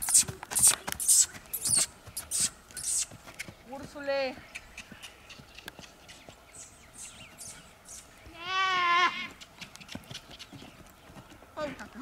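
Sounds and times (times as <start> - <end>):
hoof steps on dirt: 0.0 - 12.0.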